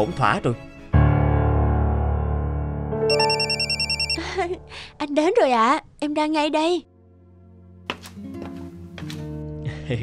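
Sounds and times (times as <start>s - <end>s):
phone ringtone warbling trill: 3.1s - 4.2s.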